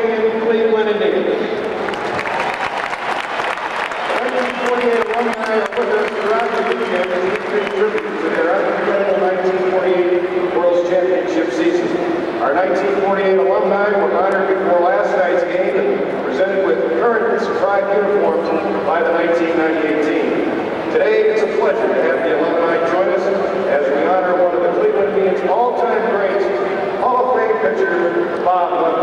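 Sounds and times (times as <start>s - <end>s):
man speaking over public address: 0.0s - 1.7s, 4.0s - 29.0s.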